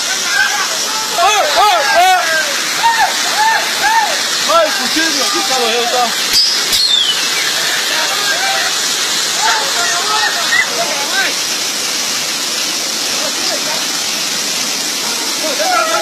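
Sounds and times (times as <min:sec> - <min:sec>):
water rushing over rocks: 0:00.0 - 0:16.0.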